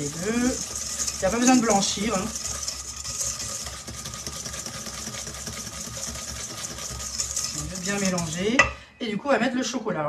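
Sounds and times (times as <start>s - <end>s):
whisk clattering in metal bowl: 0.0s - 8.8s.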